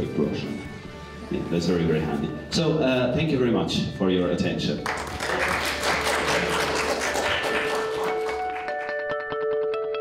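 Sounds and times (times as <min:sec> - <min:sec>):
audience applause: 0:04.8 - 0:09.0
plucked guitar music: 0:08.1 - 0:10.0.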